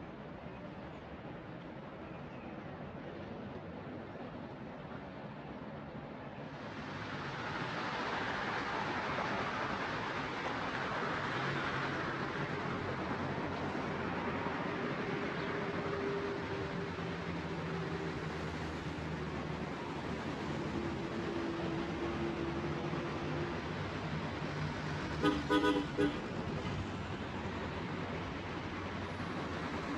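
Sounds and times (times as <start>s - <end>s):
city road traffic: 0.0s - 29.9s.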